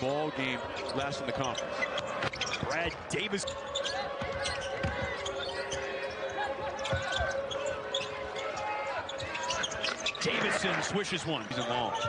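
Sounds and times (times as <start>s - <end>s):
arena crowd noise: 0.0s - 12.0s
sneakers squeaking: 0.1s - 10.6s, 11.2s - 12.0s.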